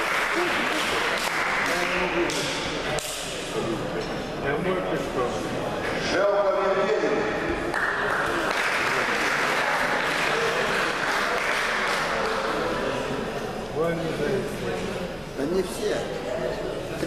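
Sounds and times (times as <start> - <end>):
audience clapping: 0.0 - 2.4, 7.7 - 13.0.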